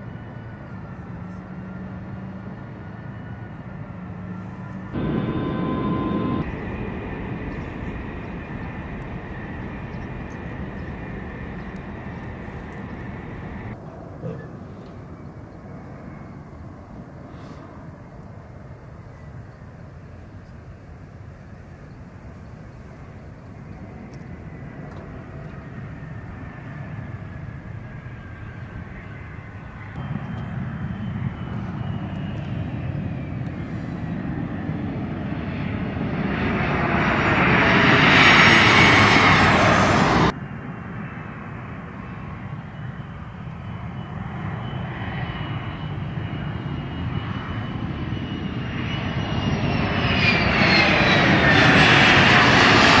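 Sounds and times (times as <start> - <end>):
jet engine turbine whine: 0.0 - 53.0.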